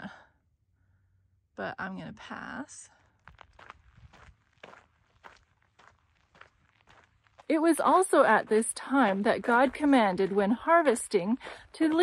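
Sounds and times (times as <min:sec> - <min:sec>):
footsteps on gravel: 0:03.0 - 0:12.0.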